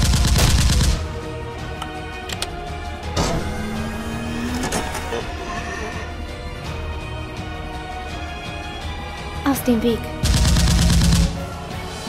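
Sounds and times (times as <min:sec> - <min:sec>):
background music: 0:00.0 - 0:12.0
automatic gunfire burst: 0:10.2 - 0:11.4.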